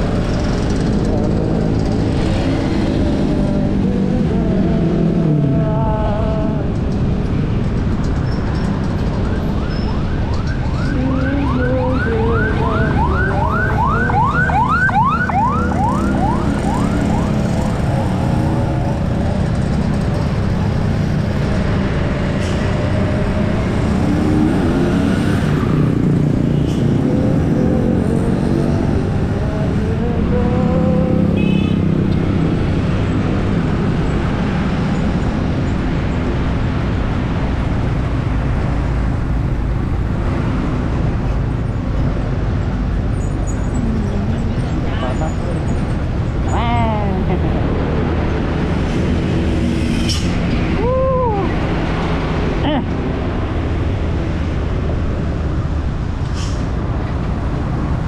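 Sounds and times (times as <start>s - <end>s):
siren yelping: 9.2s - 17.8s.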